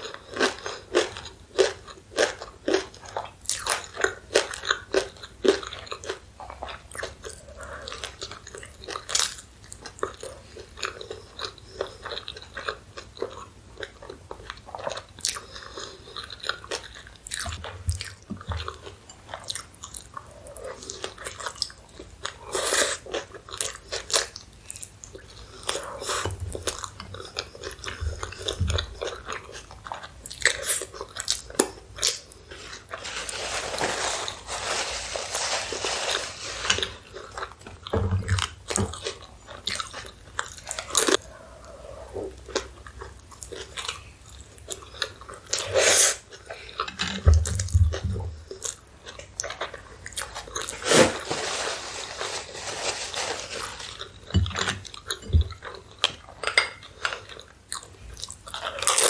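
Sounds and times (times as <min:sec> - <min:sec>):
biting and chewing food: 0:00.0 - 0:41.5, 0:42.2 - 0:59.0.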